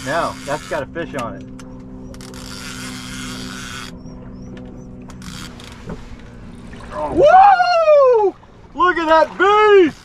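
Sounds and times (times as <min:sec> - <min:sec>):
steady low hum: 0:00.0 - 0:10.0
fishing reel clicking: 0:00.2 - 0:05.8.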